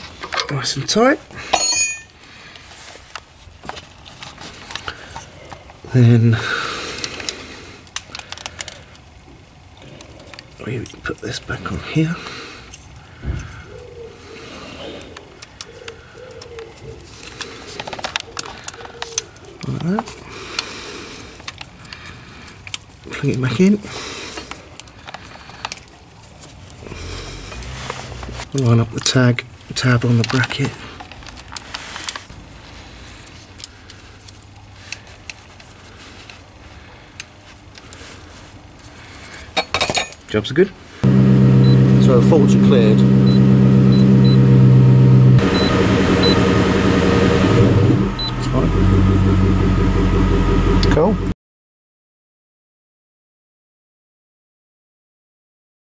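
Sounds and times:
pigeon cooing: 13.5 - 17.2, 17.8 - 20.2
steady low hum: 41.0 - 51.4.

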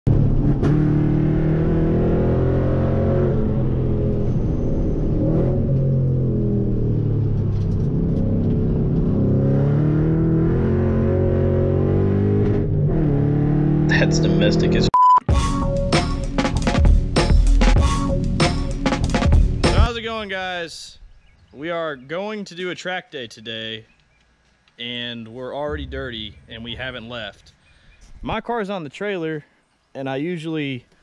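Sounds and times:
car engine revving: 0.1 - 14.9.

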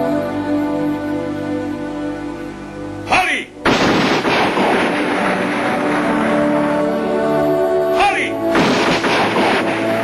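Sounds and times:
continuous gunfire volley: 3.7 - 6.9, 8.5 - 10.0.

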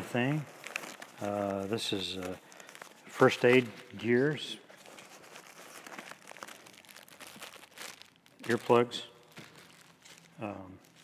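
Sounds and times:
packaging rustling and crinkling: 0.0 - 11.0.

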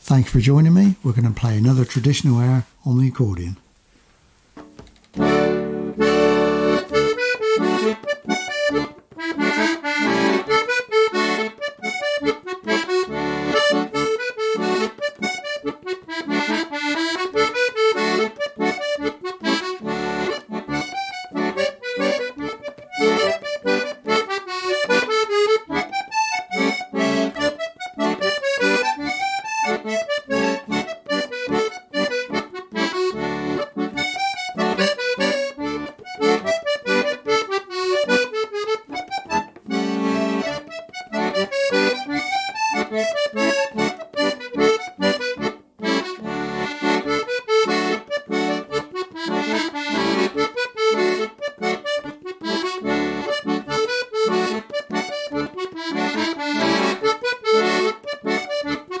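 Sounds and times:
piano accordion playing dance tune: 5.2 - 59.0.

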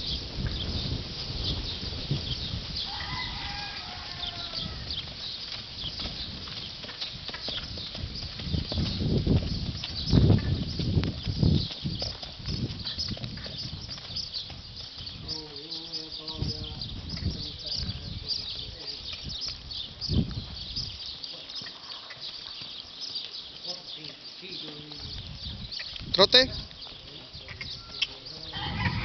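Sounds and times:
horse hooves thudding on sand: 0.0 - 29.0.

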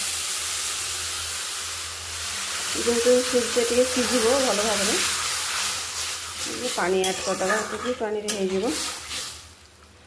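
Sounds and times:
water hissing in a hot pan: 0.0 - 9.8.

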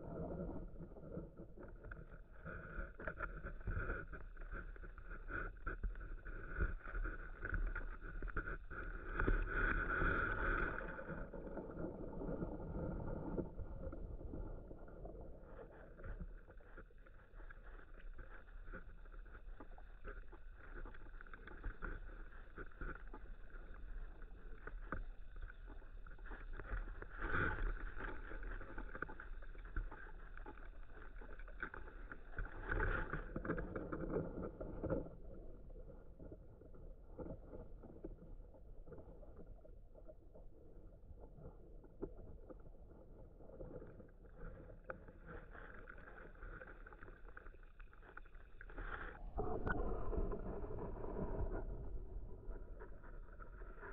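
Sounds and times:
underwater rumble of water: 0.0 - 53.9.

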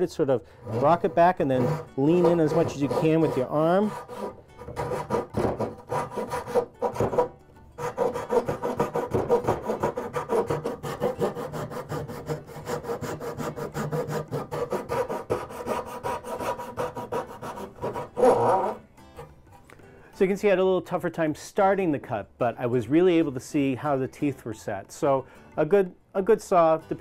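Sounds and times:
hand saw cutting wood: 0.6 - 19.4.

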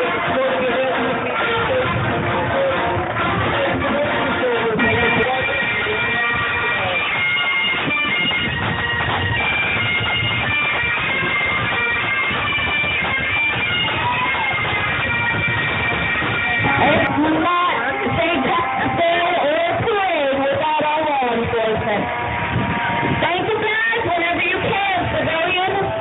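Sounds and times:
bagpipes playing a tune: 0.0 - 26.0.

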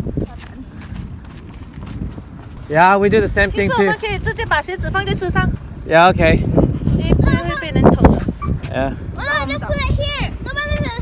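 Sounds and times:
footsteps in soft sand: 0.0 - 4.5.

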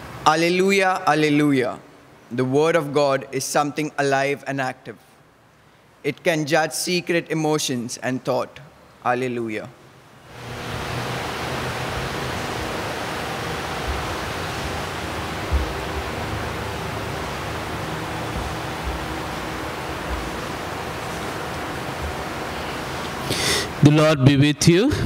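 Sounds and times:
steady rushing noise: 10.0 - 24.1
faint low thumps: 12.0 - 23.8.

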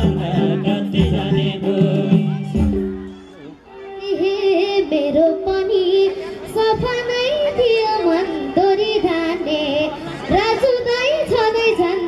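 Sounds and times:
girl singing into a microphone: 3.8 - 12.0.

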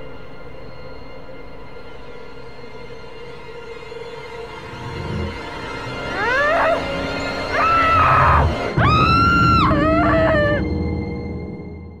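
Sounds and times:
ominous music: 0.0 - 12.0
long high screams: 6.1 - 10.7.

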